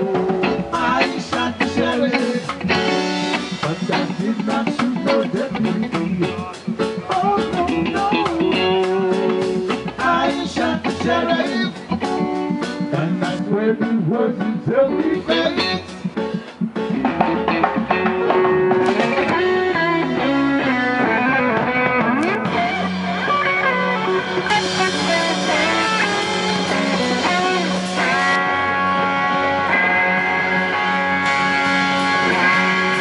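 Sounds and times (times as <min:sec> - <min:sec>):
electric guitar melody: 0:00.0 - 0:33.0
live reggae band playing: 0:00.0 - 0:33.0.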